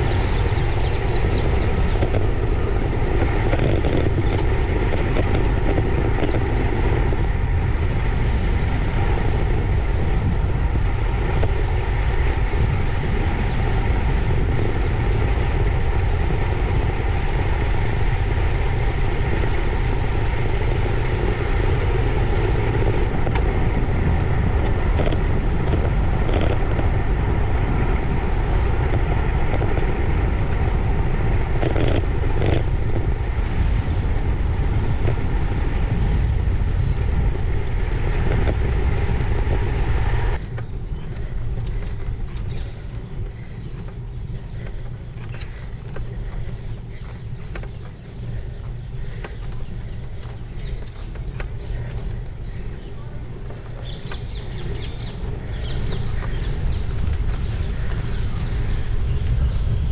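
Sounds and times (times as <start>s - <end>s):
bicycle tyres rolling on tarmac: 0.0s - 59.9s
wind buffeting microphone: 0.0s - 59.9s.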